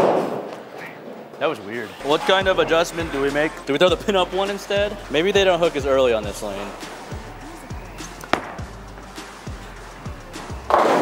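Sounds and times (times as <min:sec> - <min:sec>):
soft background music: 0:01.4 - 0:11.0
bowling pins crashing: 0:08.3 - 0:08.7, 0:10.4 - 0:11.0.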